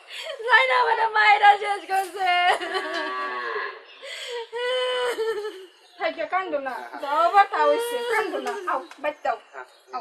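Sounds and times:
woman wailing: 0:04.6 - 0:05.6.

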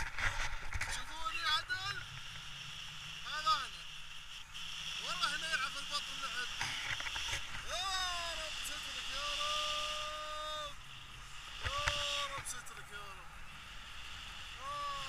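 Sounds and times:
man calling out: 0:07.6 - 0:10.9, 0:11.6 - 0:13.3, 0:14.6 - 0:15.0.

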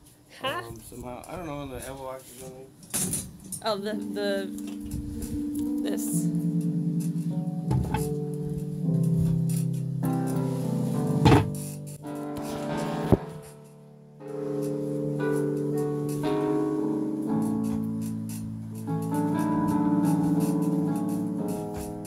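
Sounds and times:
keyboard playing sustained chords: 0:03.6 - 0:22.0
sharp knocks: 0:07.7 - 0:08.2, 0:11.2 - 0:11.6.

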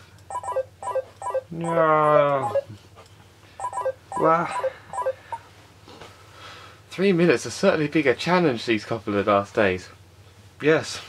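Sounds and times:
phone timer alarm beeps: 0:00.3 - 0:01.8, 0:02.4 - 0:02.7, 0:03.6 - 0:05.4.

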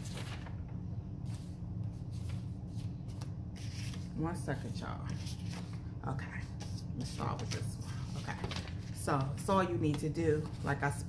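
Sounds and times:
paper rustling: 0:00.0 - 0:11.0.

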